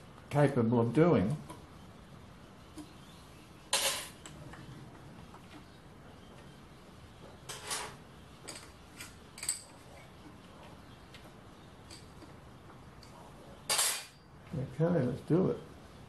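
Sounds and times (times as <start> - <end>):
metal tools clattering: 3.7 - 4.2, 7.5 - 9.8, 13.7 - 14.2.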